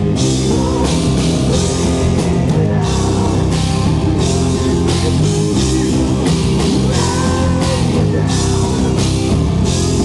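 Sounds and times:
rock band playing loud: 0.0s - 10.0s.

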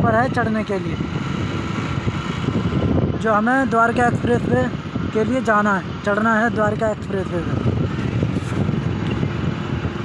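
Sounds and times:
wind on microphone: 0.0s - 6.1s, 6.7s - 10.0s.

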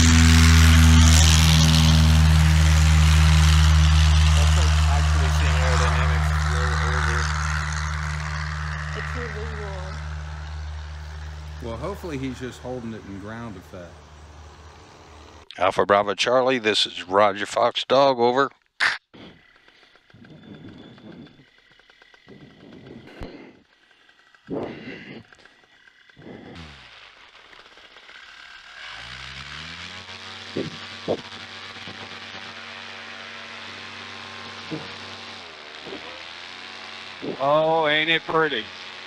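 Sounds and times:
paramotor engine revving: 0.0s - 15.5s, 19.2s - 39.0s
gear rustling and knocking: 19.4s - 26.6s.

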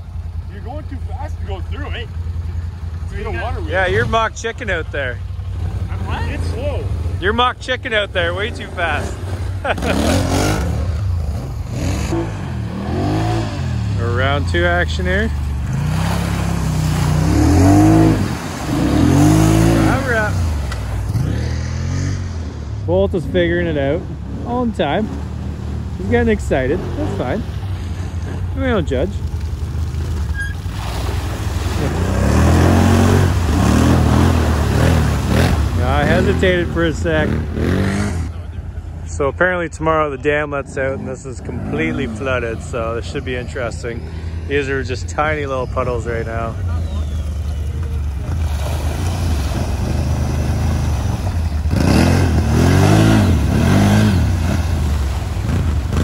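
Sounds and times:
atv engine revving: 0.0s - 56.0s
low engine drone: 0.0s - 56.0s
water splashing from wheels: 0.0s - 56.0s.

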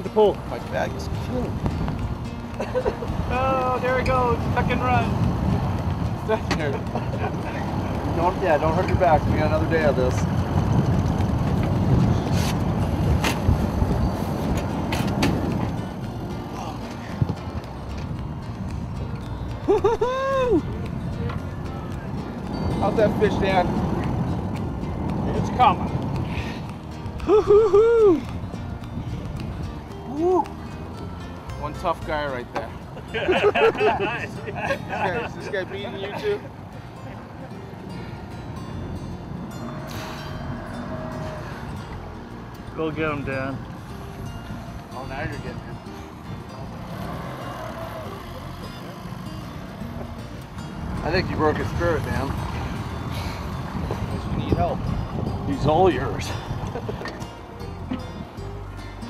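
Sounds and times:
wind buffeting microphone: 0.0s - 58.7s.

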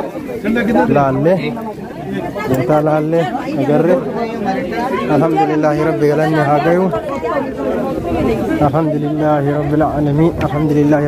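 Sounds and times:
crowd talking and chanting: 0.0s - 11.0s.

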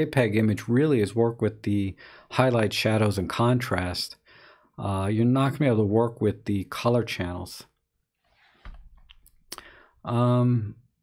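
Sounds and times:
faint breath: 2.0s - 2.3s, 4.2s - 4.8s, 9.5s - 10.0s.

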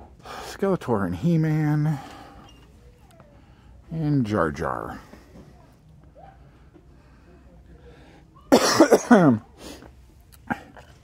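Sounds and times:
man coughing: 8.5s - 9.5s.

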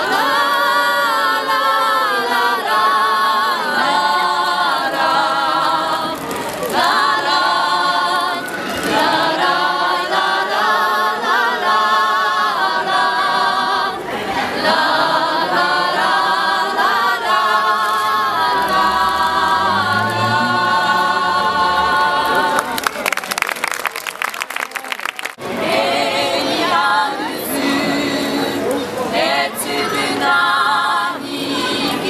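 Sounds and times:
women singing a cappella: 0.0s - 22.8s, 25.4s - 32.0s
hand clapping: 22.6s - 25.4s.

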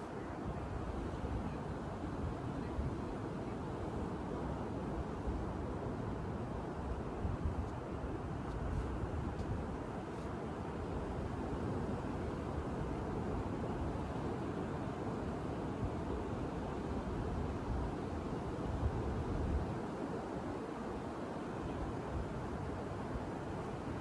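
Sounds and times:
wind rumbling on microphone: 4.6s - 20.7s.

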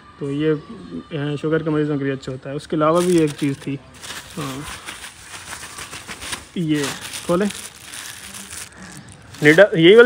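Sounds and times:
plastic bags rustling: 2.9s - 10.0s.

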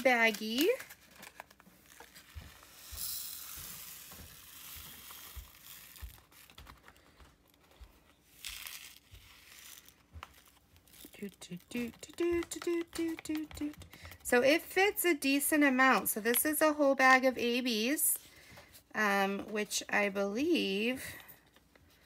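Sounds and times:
person speaking: 0.0s - 0.9s, 11.0s - 18.2s
plastic bag crinkling: 0.0s - 14.2s
resin beads pouring into plastic pot: 2.5s - 6.4s.

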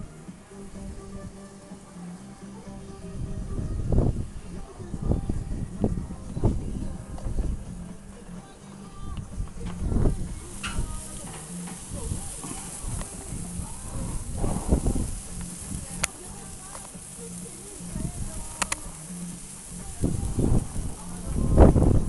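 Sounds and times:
faint background music: 0.0s - 22.0s
indistinct voices: 0.0s - 22.0s
sharp clicks: 18.4s - 19.4s.

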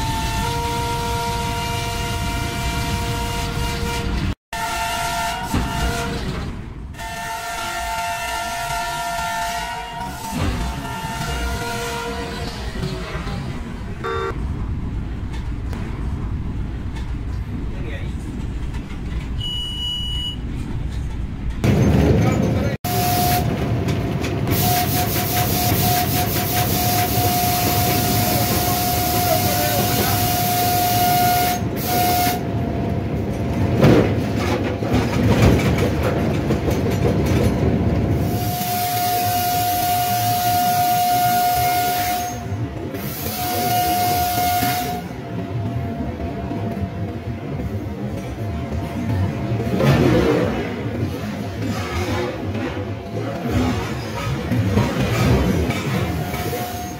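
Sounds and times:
locomotive horn blasts: 0.0s - 12.6s, 14.0s - 14.4s, 22.8s - 23.6s, 24.5s - 32.5s, 38.2s - 45.2s
train rumbling on track: 0.0s - 56.9s.

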